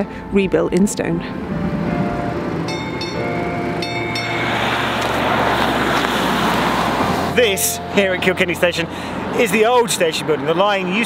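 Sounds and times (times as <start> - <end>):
street traffic: 0.0 - 11.0
vehicle passing by: 1.2 - 11.0.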